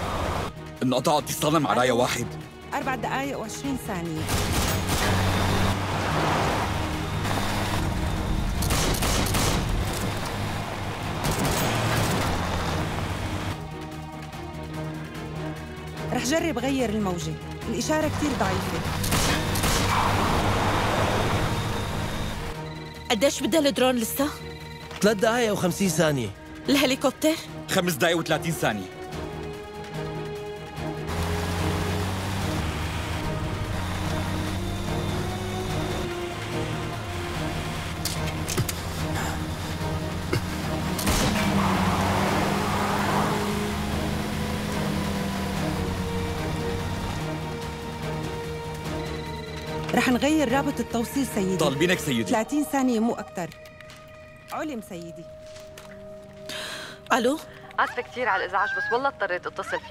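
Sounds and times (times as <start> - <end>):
car and road noise: 0.0 - 0.8, 2.4 - 16.4, 17.3 - 23.0, 28.3 - 52.3
action film music: 0.0 - 59.9
pistol shots: 8.6 - 9.8.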